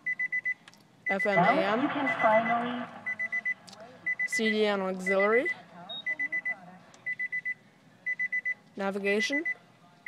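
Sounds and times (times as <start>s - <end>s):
car warning chime beeps: 0.0s - 9.6s.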